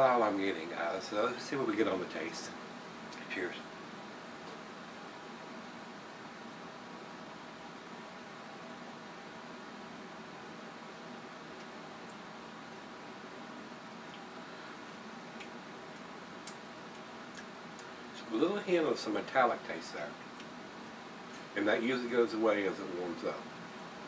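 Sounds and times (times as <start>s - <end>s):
steady room hum: 0.0s - 24.0s
faint clicks: 14.1s - 14.3s.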